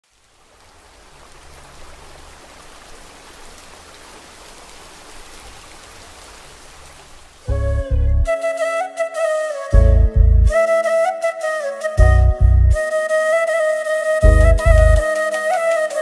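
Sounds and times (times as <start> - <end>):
rain falling on water: 0.0 - 7.6.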